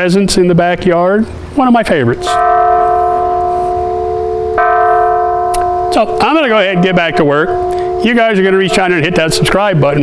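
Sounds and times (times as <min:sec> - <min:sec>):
large bell ringing: 0:02.0 - 0:10.0.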